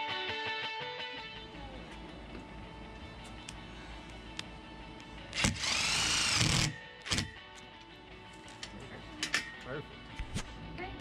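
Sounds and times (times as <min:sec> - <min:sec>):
cordless driver driving screw: 0:05.4 - 0:07.4.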